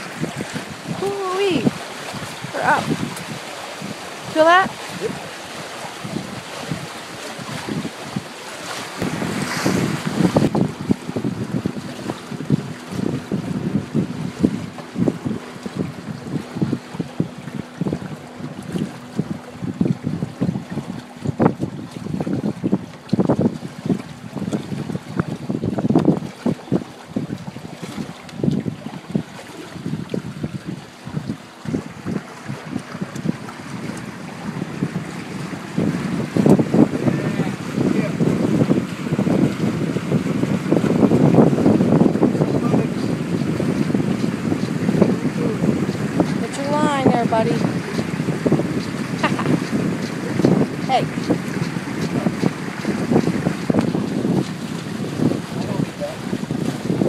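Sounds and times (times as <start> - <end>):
water rushing past hulls: 0.0 - 57.0
wind buffeting microphone: 0.0 - 57.0.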